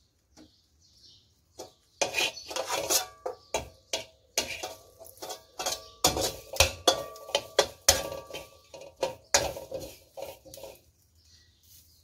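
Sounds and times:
metal spatula scraping wok: 0:01.5 - 0:12.0.

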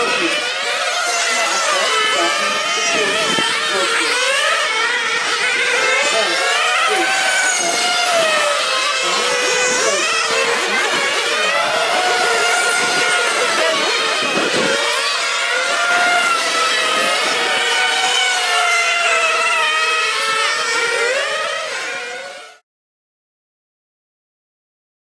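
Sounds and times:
rc car engines whining: 0:00.0 - 0:22.6.

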